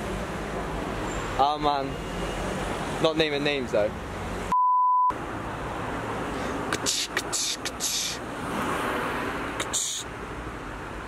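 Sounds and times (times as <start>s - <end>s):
street traffic noise: 0.0s - 11.0s
censor bleep: 4.5s - 5.1s.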